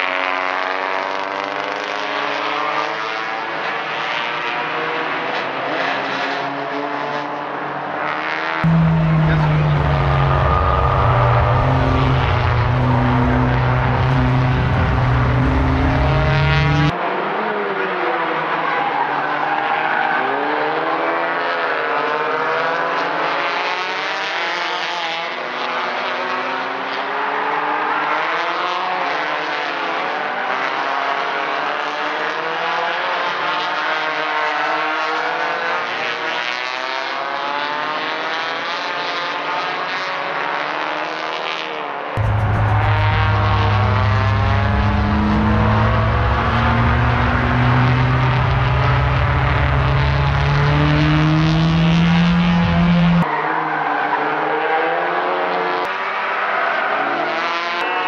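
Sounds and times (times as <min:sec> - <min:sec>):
race car engines revving: 0:00.0 - 0:58.0
deep steady engine drone: 0:08.6 - 0:16.9, 0:42.2 - 0:53.3.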